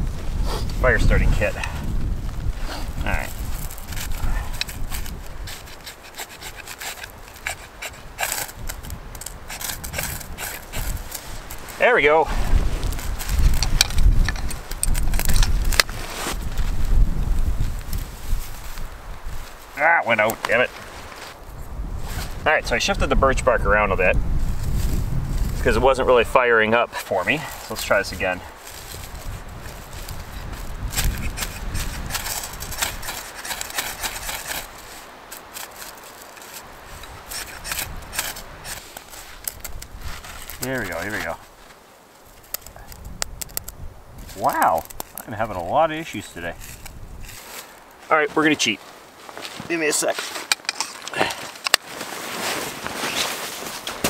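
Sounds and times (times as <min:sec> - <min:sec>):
kindling fire crackling: 0:00.0 - 0:23.5, 0:24.1 - 0:54.0
wind rumbling on microphone: 0:00.0 - 0:48.0
ferro rod scraping: 0:02.6 - 0:16.4, 0:26.9 - 0:41.4, 0:46.2 - 0:47.8.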